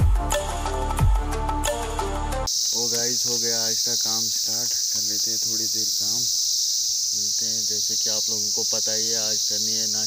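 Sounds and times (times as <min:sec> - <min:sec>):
high-pitched insect chorus: 0:02.4 - 0:10.0
man talking: 0:02.7 - 0:06.4, 0:07.1 - 0:10.0.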